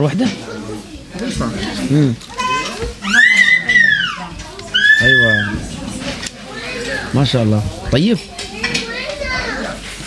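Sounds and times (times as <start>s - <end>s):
soft background voices talking: 0.0s - 10.0s.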